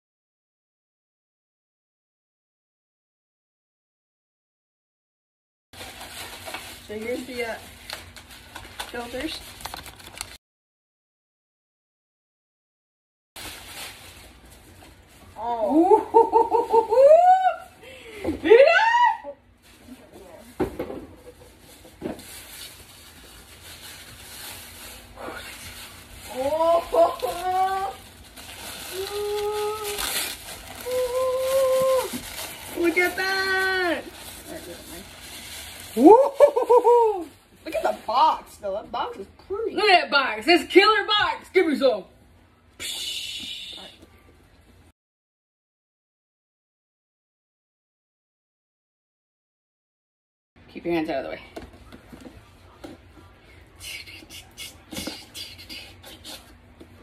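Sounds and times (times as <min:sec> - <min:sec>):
wrapping paper rustle: 0:05.8 - 0:10.4, 0:13.4 - 0:15.6, 0:21.2 - 0:38.4
excited ooh and aah exclamations: 0:15.4 - 0:17.7, 0:18.4 - 0:19.4.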